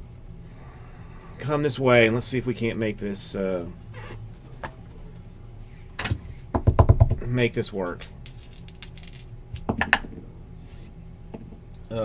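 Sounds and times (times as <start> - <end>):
plastic dice rattling in hand: 8.0 - 9.7.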